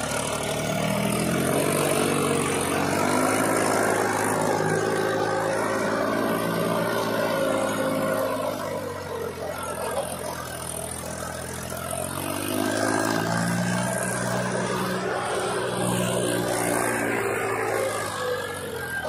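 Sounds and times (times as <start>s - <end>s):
tractor diesel engine under load: 0.0s - 19.0s.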